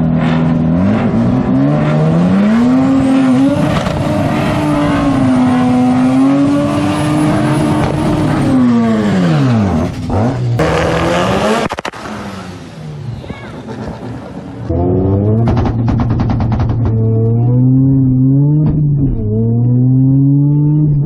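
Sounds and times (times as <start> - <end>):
engine running steadily: 0.0 - 21.0
rotary engine revving high: 0.0 - 21.0.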